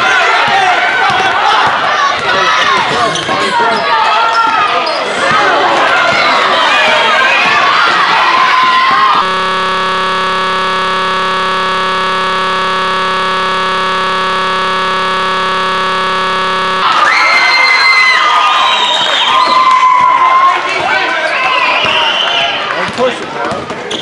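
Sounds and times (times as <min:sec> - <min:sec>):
steady buzzing tone: 0:09.0 - 0:17.0.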